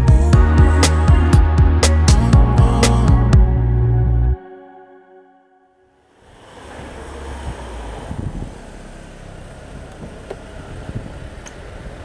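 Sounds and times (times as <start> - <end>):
car engine rumbling: 6.1 - 12.0
traffic noise: 6.1 - 12.0
car door opening clicks: 9.9 - 10.5.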